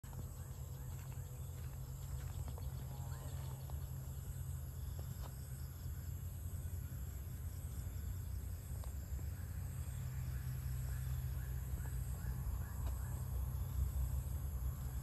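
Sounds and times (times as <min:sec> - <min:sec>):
high-pitched insect chorus: 0:00.0 - 0:15.0.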